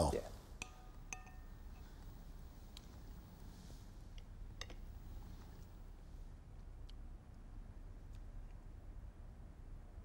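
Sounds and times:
spoon clinking on dish: 0.6s - 1.6s.

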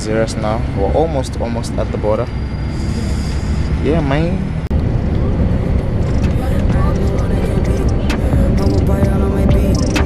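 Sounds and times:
bus engine and road rumble: 0.0s - 10.0s.

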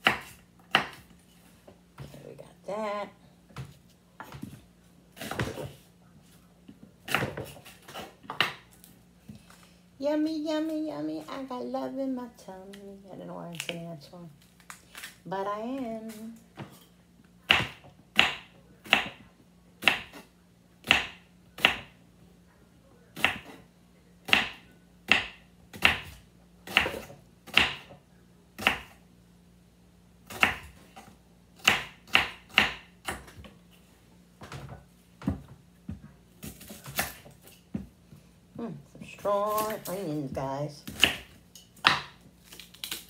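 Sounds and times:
knife chopping on wooden board: 0.0s - 1.0s, 7.1s - 8.6s, 17.5s - 19.2s, 19.8s - 20.2s, 20.8s - 21.9s, 23.2s - 23.6s, 24.3s - 27.9s, 28.6s - 29.0s, 30.3s - 30.8s, 31.6s - 33.4s, 40.8s - 42.2s
faint low hum: 0.0s - 43.0s.

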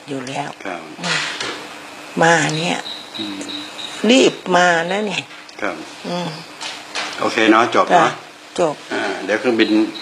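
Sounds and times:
person speaking in short phrases: 2.2s - 3.5s, 7.2s - 8.2s
faint high-pitched tone: 2.2s - 6.5s, 7.2s - 10.0s.

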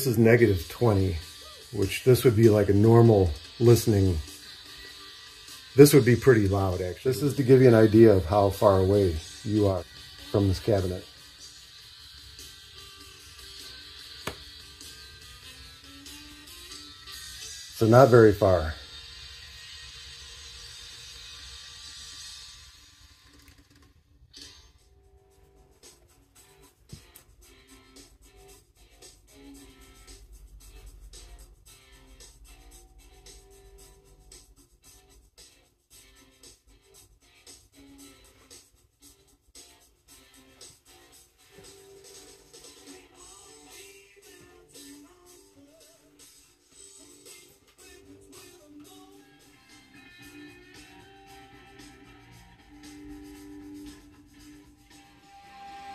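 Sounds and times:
faint thin music from wooden panel: 0.0s - 55.9s.

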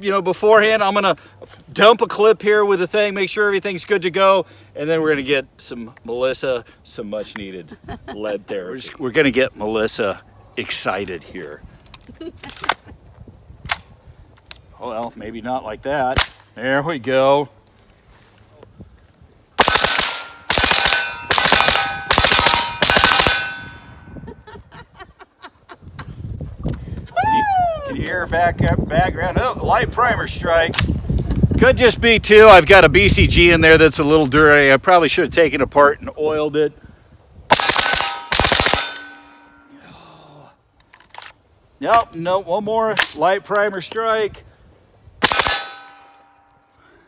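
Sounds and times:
suppressed rifle firing rapidly: 19.6s - 23.6s, 37.5s - 39.1s, 45.2s - 45.8s
steel targets ringing: 19.7s - 24.2s, 37.5s - 39.8s, 45.2s - 46.7s.

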